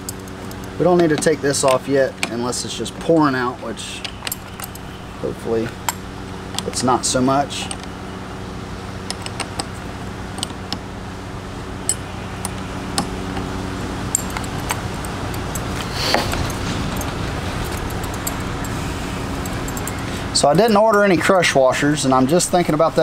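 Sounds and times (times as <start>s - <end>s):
low mechanical hum: 0.0s - 23.0s
wrench clicking and clinking: 4.0s - 5.0s, 14.1s - 21.3s, 22.1s - 23.0s.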